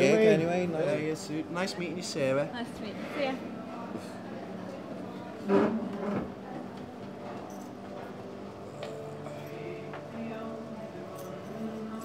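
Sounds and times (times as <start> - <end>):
chair scraping across floor: 5.4 - 6.4.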